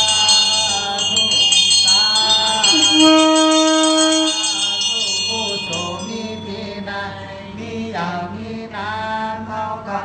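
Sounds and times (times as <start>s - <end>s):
person chanting slowly: 0.0s - 9.9s.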